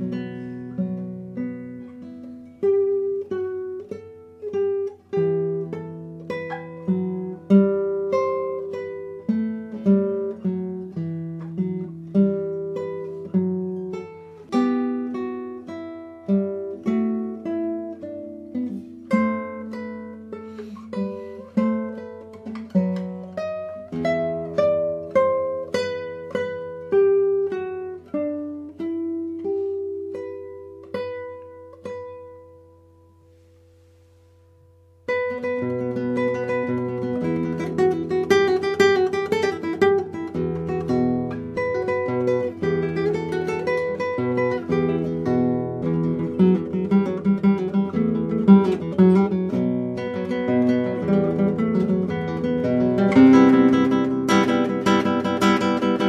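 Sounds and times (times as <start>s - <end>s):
solo guitar playing: 0.0s - 56.0s.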